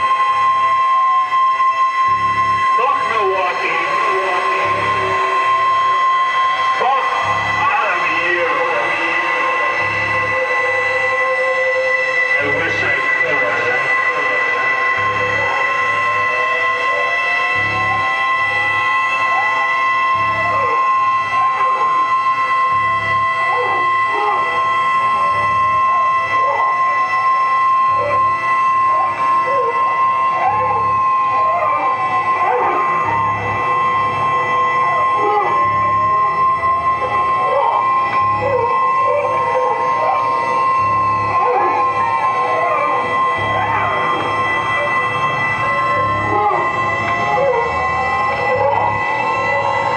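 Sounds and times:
high-pitched electronic drones: 0.0 - 49.9
howling swooping pitch glides: 0.0 - 49.9
low electronic pulse: 0.0 - 49.9.

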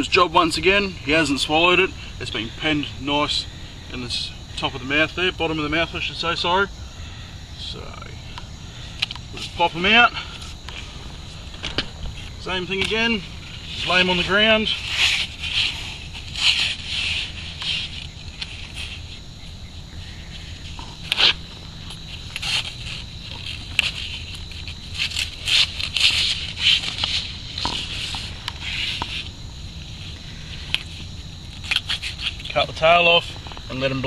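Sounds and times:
crickets trilling: 0.0 - 34.0
low hum: 0.8 - 34.0.

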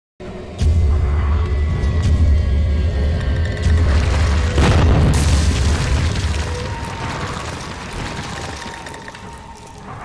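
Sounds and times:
music: 0.2 - 7.0
crumbling rubble crackle: 3.5 - 10.0
deep boom: 3.9 - 6.8.

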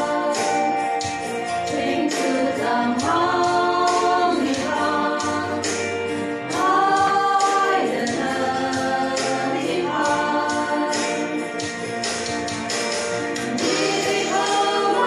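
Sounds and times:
steady percussive beat: 0.0 - 15.0
women singing in unison: 1.6 - 5.8, 6.5 - 11.4, 13.5 - 15.0.

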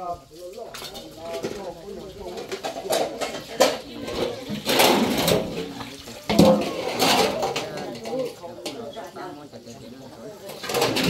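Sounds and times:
hose water splashing on dishes: 0.0 - 11.0
pots and dishes clinking: 0.6 - 11.0.

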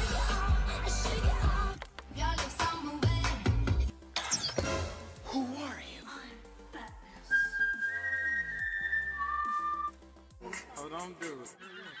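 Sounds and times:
person whistling: 7.3 - 10.0.

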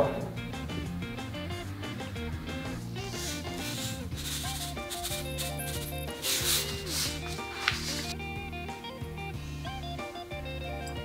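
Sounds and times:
background music: 0.0 - 11.0
salt grains rattling into a bowl: 3.2 - 8.1.

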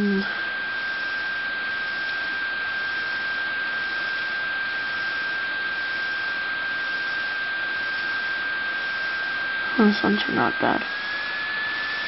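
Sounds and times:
electrical hiss: 0.0 - 12.0
high-pitched whine: 0.0 - 12.0.

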